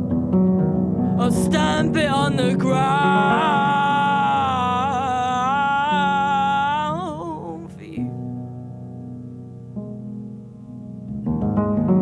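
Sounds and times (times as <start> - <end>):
low sustained guitar tones: 0.0 - 12.0
singer holding long note: 1.2 - 8.2.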